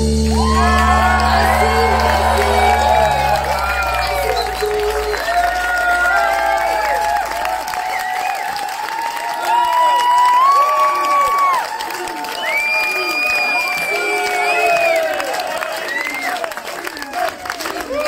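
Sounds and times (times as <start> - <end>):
audience cheering and clapping: 0.0 - 18.0.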